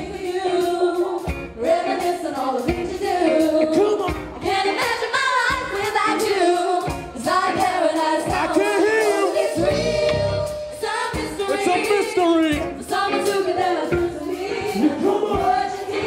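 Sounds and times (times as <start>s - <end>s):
women singing together: 0.0s - 11.9s, 12.8s - 16.0s
band with saxophones and guitar: 0.0s - 16.0s
low beat: 8.4s - 12.8s.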